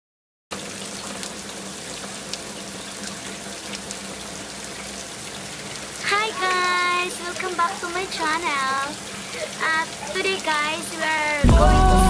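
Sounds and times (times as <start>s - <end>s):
running water rushing: 0.5s - 12.0s.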